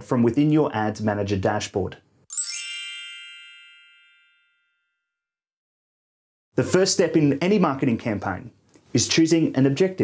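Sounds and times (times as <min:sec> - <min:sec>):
bright bell-like chime: 0:02.3 - 0:05.3.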